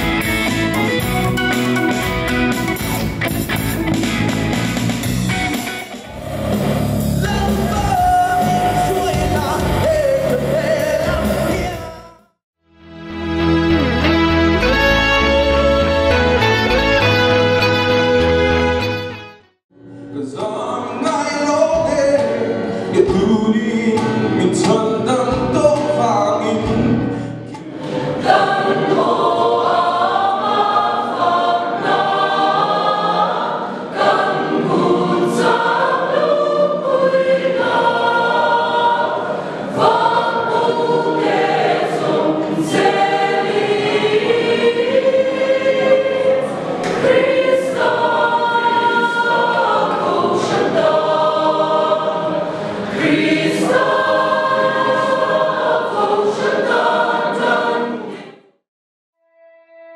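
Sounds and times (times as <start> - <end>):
mixed choir singing in harmony: 6.1 - 12.1, 27.5 - 58.6.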